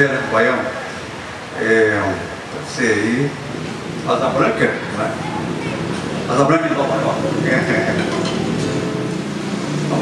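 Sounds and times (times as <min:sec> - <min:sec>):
electric bass notes: 0:03.6 - 0:10.0.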